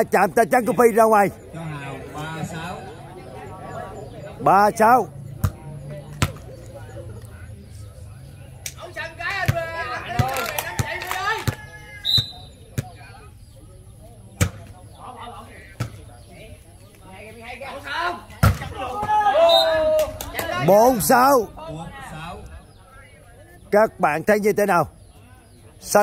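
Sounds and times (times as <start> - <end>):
voices calling out: 0.0 - 26.0
volleyball slaps: 9.4 - 11.6.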